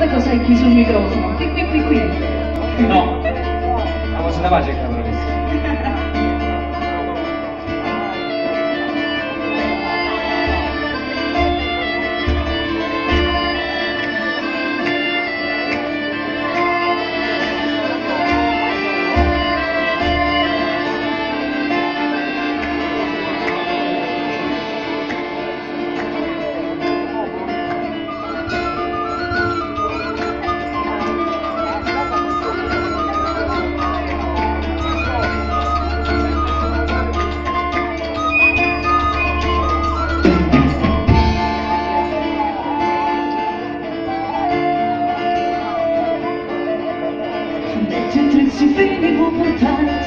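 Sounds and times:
live band with singing: 0:00.0 - 0:50.0
plucked strings: 0:00.0 - 0:50.0
sustained higher melody: 0:00.0 - 0:50.0.

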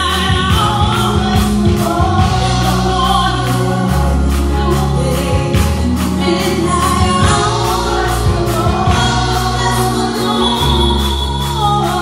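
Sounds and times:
backing singers: 0:00.0 - 0:12.0
band playing: 0:00.0 - 0:12.0
bass line: 0:00.0 - 0:12.0
woman singing into a microphone: 0:00.0 - 0:12.0.

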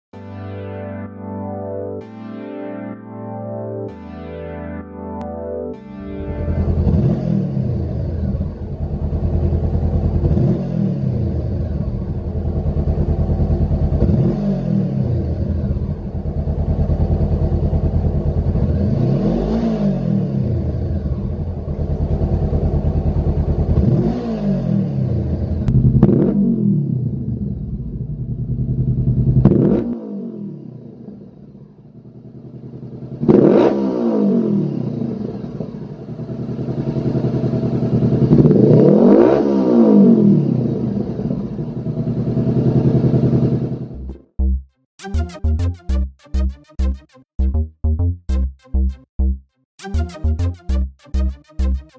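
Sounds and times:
motorcycle engine idling and revving: 0:06.3 - 0:44.6.

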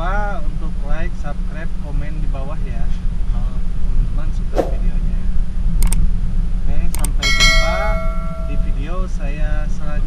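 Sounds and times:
sharp clicks: 0:05.8 - 0:06.0, 0:07.0 - 0:07.2
bright ringing chime: 0:07.2 - 0:08.9.

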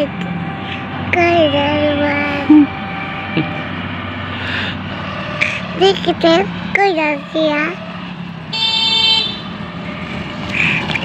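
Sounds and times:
auto-rickshaw engine running: 0:00.0 - 0:11.0
road noise: 0:00.0 - 0:11.0.

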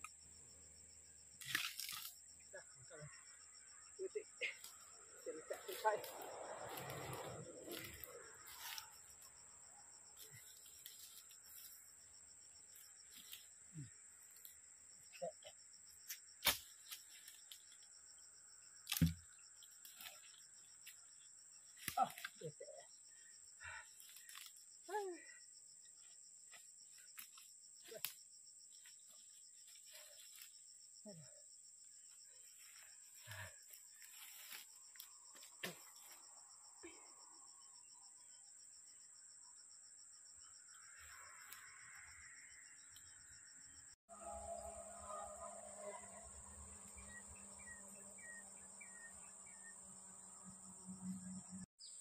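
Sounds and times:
high-pitched insect drone: 0:00.0 - 0:25.2, 0:25.8 - 0:52.0
logs and branches knocking: 0:18.9 - 0:19.2.

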